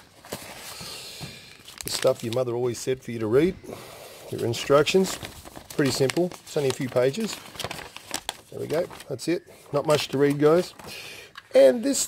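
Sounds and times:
cardboard and paper rustling: 0.0 - 2.5, 4.4 - 11.5.

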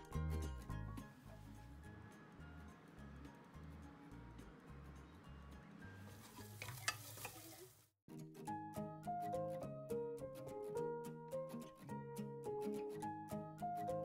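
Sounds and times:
soft background music: 0.0 - 7.2, 8.1 - 14.0
chicken deep-frying in oil: 5.7 - 7.9
metal tongs clinking: 6.4 - 7.5.

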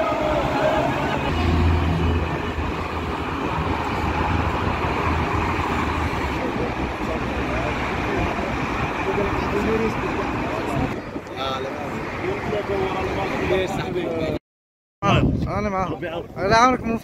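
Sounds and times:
heavy vehicle passing: 0.0 - 14.0
steady traffic noise: 0.0 - 14.4.

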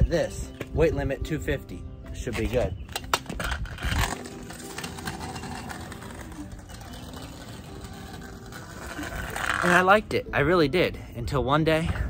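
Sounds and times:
scooter wheels rolling on asphalt: 3.0 - 10.1.

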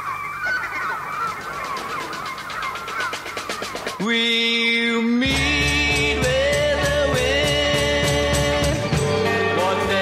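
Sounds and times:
seagull cries: 0.0 - 4.1.

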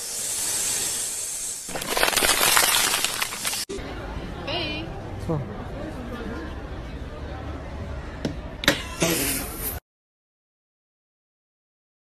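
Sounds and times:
steady high hiss: 0.0 - 1.8
crackling noise: 1.6 - 3.7.

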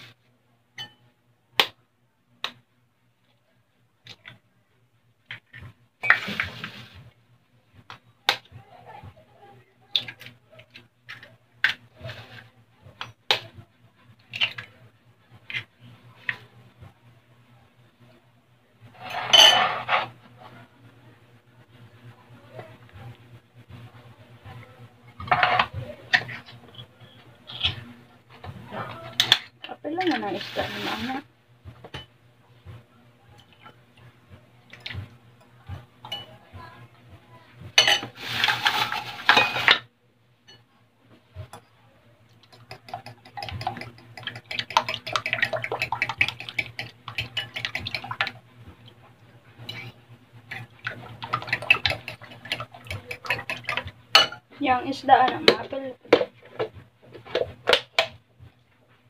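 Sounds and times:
eggs cracking on glass bowl: 42.4 - 48.4.

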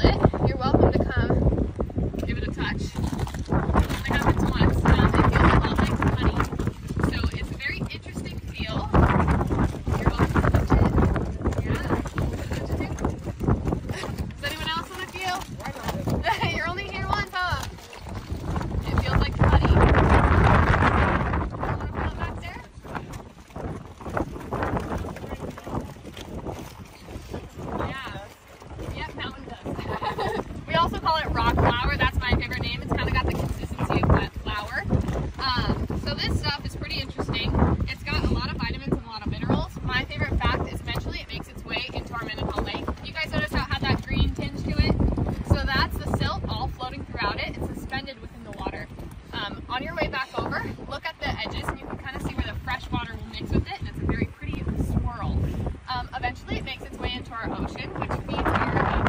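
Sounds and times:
people talking: 0.0 - 1.4, 2.2 - 3.1, 3.8 - 9.2, 9.8 - 13.2, 13.9 - 18.1, 18.8 - 23.2, 24.9 - 26.0, 27.4 - 59.0
wind rumbling on microphone: 0.0 - 59.0
people's voices: 9.8 - 23.2, 27.3 - 59.0.

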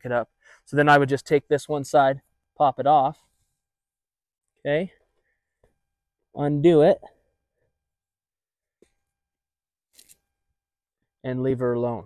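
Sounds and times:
brief rope rustles: 9.9 - 10.3.

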